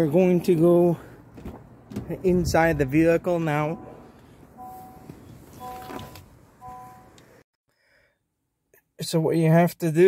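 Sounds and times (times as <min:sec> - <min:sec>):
car warning chime: 0:03.6 - 0:07.2.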